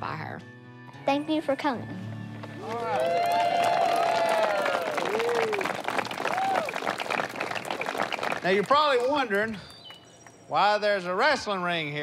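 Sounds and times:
crowd applauding and cheering: 2.4 - 10.4
long whoops: 2.6 - 6.9.

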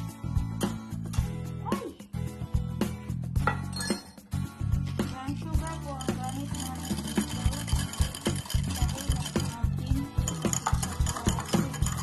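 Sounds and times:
background music: 0.0 - 12.0
whisk clinking against ceramic bowl: 5.6 - 12.0.

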